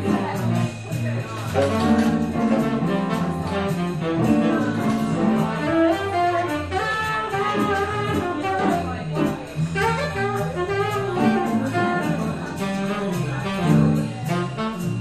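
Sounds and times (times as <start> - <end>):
walking bass line: 0.0 - 15.0
electric keyboard: 1.4 - 5.9
saxophone melody: 1.6 - 15.0.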